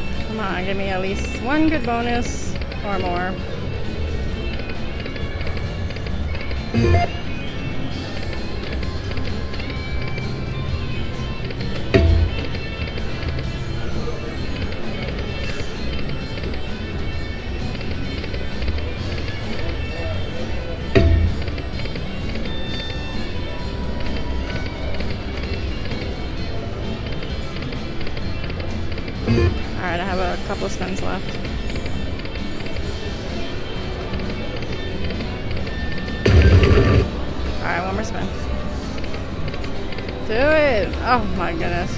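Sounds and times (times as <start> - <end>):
slot machine music and reel spins: 0.0 - 41.9
heavy thuds: 12.0 - 12.7, 21.0 - 21.7.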